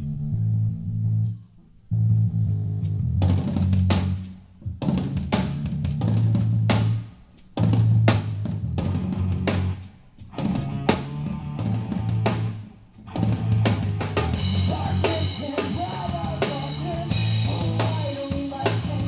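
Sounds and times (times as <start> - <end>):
drum kit: 2.8 - 19.0
amplified guitars riff: 7.7 - 19.0.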